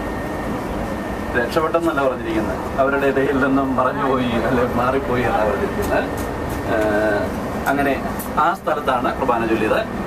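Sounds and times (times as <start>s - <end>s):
coach engine and road rumble: 0.0s - 10.0s
people talking: 1.3s - 9.9s.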